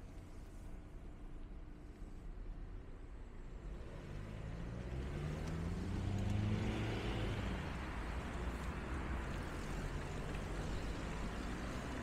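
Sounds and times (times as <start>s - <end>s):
town traffic noise: 0.0s - 12.0s
vehicle engine accelerating: 3.8s - 8.4s.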